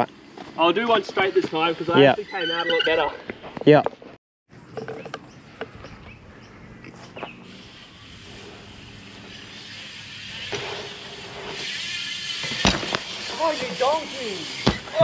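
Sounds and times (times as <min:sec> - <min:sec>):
bike tyres rolling on concrete: 0:00.0 - 0:15.0.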